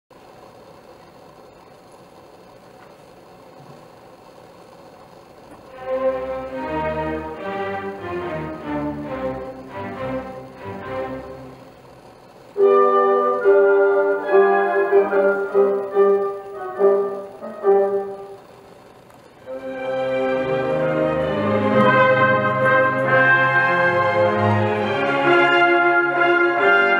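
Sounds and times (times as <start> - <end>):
orchestra playing classical music: 5.6 - 12.0, 12.6 - 18.5, 19.4 - 26.9
grand piano: 12.6 - 18.6, 19.4 - 26.9.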